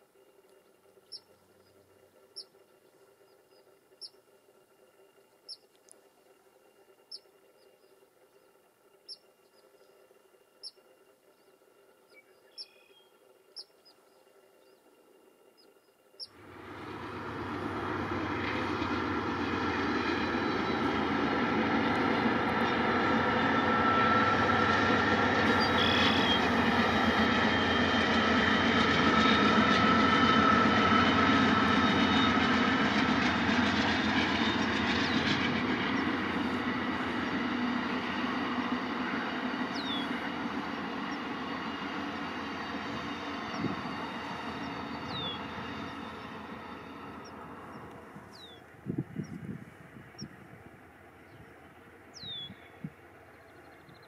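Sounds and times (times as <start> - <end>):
train wheels rumbling on rail: 16.2 - 54.0
faint high squeal: 25.5 - 27.2.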